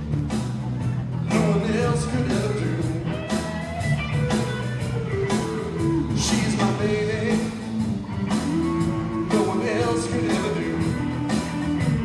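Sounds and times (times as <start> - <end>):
drum beat: 0.0 - 12.0
electric guitar: 0.0 - 12.0
live blues band playing: 0.0 - 12.0.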